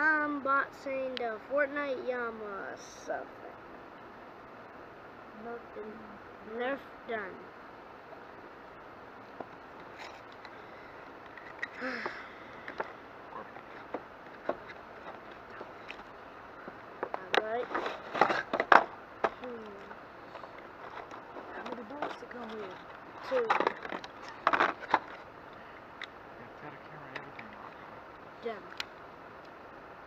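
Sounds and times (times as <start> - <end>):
cardboard and plastic packaging rustling: 12.6 - 25.3.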